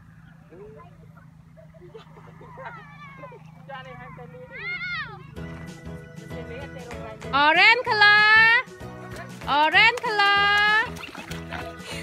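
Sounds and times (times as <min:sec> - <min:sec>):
children calling out: 0:00.5 - 0:05.5.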